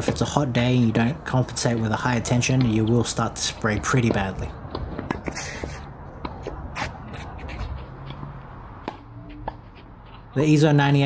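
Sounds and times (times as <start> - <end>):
low background noise: 0.0 - 11.0
scuffing sounds: 2.5 - 10.4.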